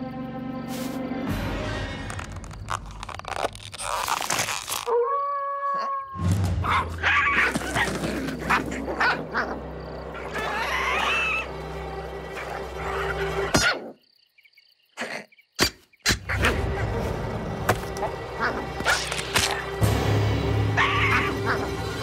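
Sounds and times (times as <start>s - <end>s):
cartoon background score: 4.8s - 13.8s, 15.0s - 22.0s.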